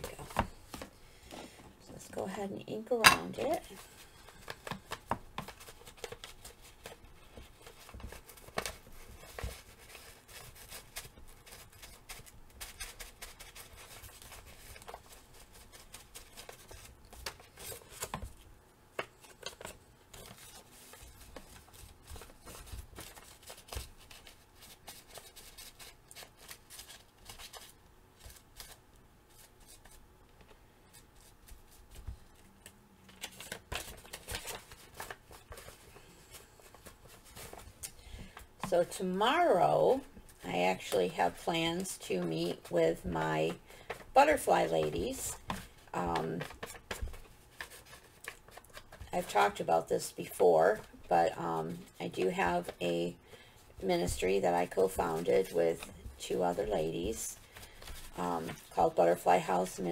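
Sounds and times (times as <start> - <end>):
paper and fabric rustling: 2.2 - 59.9.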